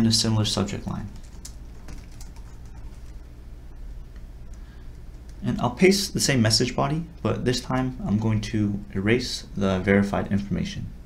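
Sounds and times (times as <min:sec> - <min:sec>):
typing on computer keyboard: 0:01.1 - 0:03.2.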